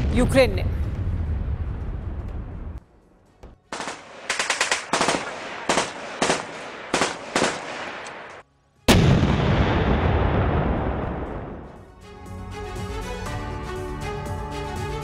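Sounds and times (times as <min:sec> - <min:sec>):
gunshots: 0:03.7 - 0:11.6
loud boom: 0:08.9 - 0:11.9.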